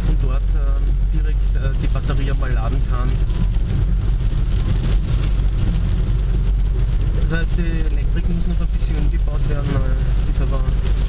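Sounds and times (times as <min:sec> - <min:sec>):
car cabin low rumble: 0:00.0 - 0:11.0
rain hiss: 0:00.0 - 0:11.0.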